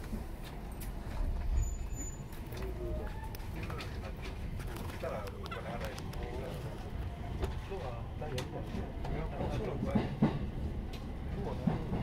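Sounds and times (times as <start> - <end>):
train running rumble: 0.0 - 12.0.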